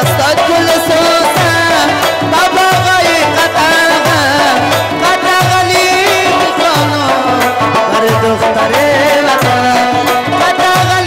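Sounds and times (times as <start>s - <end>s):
rubab and harmonium melody: 0.0s - 11.0s.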